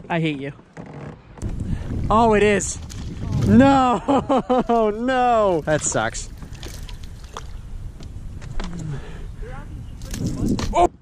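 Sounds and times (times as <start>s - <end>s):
wind rumble on microphone: 1.4s - 11.0s.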